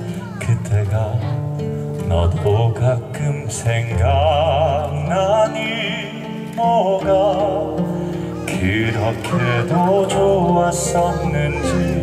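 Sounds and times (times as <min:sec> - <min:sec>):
amplified instrumental accompaniment: 0:00.0 - 0:12.0
man singing a slow ballad: 0:00.0 - 0:12.0.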